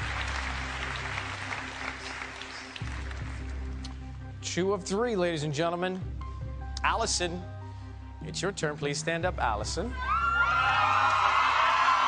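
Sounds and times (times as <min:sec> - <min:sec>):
audience applause: 0:00.0 - 0:03.6, 0:10.4 - 0:12.0
low music bed: 0:00.0 - 0:10.2.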